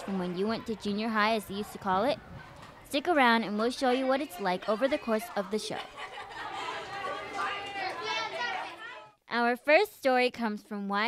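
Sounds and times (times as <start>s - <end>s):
children chattering: 0.0s - 9.2s.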